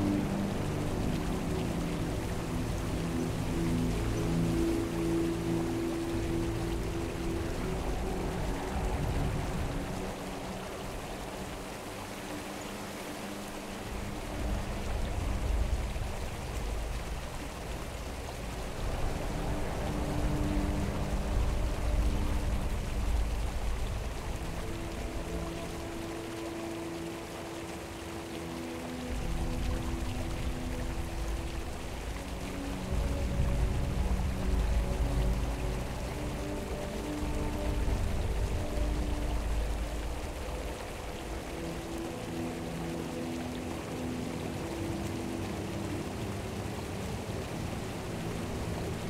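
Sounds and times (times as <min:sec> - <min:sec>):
ambient music with low chords: 0:00.0 - 0:49.0
stream rushing over rocks: 0:00.0 - 0:49.0.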